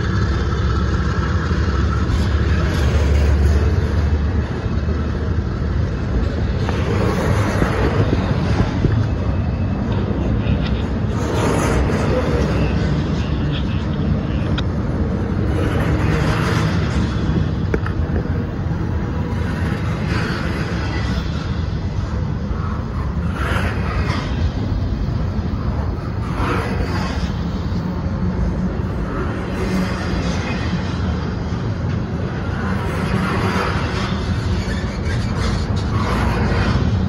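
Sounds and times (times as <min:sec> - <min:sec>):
freight train wheels rumbling: 0:00.0 - 0:37.0.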